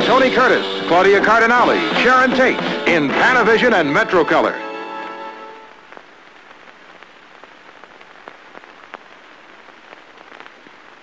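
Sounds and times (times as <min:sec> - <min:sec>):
film soundtrack surface noise: 0:00.0 - 0:11.0.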